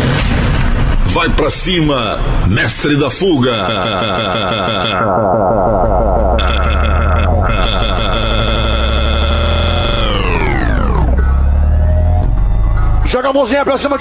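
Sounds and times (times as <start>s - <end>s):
heavy sub-bass: 2.1s - 13.2s
electronic dance music: 3.4s - 13.1s
buzzy synthesizer chord: 3.5s - 13.1s.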